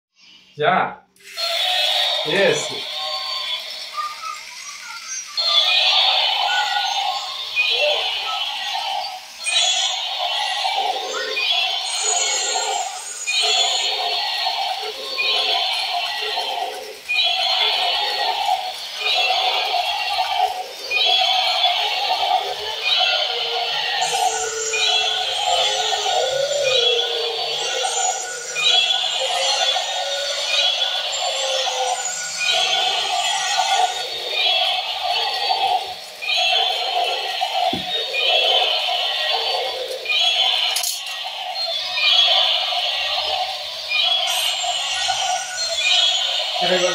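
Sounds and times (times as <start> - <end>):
toys playing tinny electronic songs: 0.2 - 46.9.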